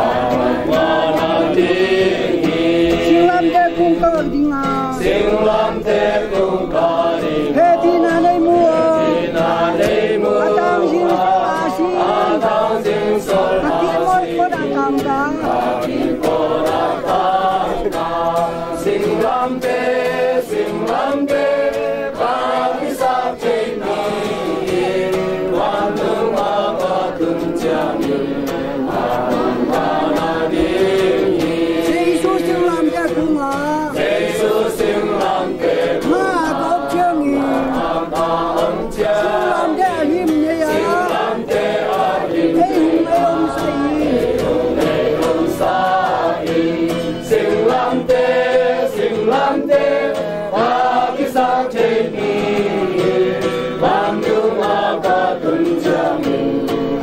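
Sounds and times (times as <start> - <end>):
acoustic guitar strumming: 0.0 - 57.0
children and adults singing a hymn: 0.0 - 57.0.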